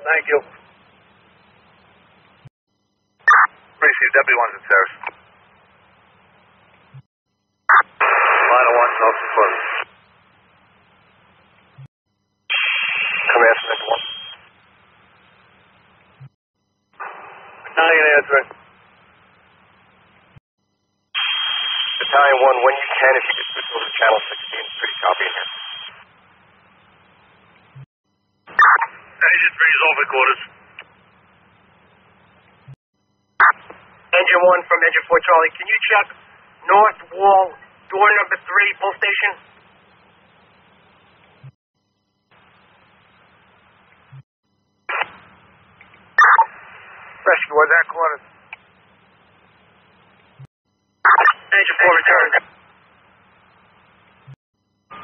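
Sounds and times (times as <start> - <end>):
radio voice transmissions: 0.0 - 0.6, 3.3 - 5.2, 7.7 - 9.9, 12.5 - 14.4, 17.0 - 18.6, 21.2 - 26.0, 28.6 - 30.9, 33.4 - 39.4, 46.2 - 48.3, 51.1 - 52.5
faint hum: 0.0 - 55.0
radio click: 44.9 - 45.2.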